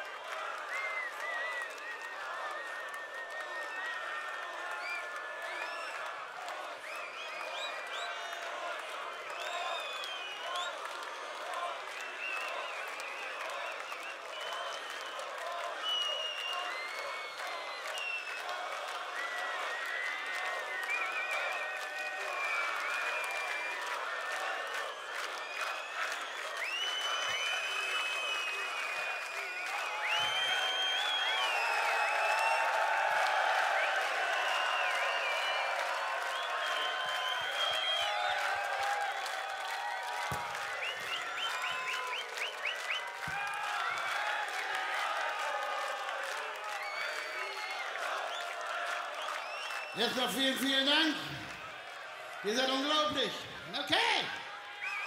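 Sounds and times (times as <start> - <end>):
crowd applauding and cheering: 0.0 - 55.0.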